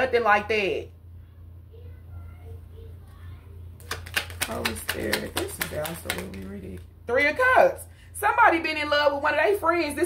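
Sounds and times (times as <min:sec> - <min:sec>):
cards being shuffled: 0:03.8 - 0:06.8.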